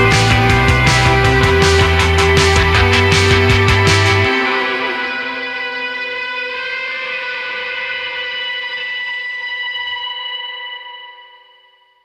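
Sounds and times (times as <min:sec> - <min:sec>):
ringing electric guitar chord: 0:00.0 - 0:11.9.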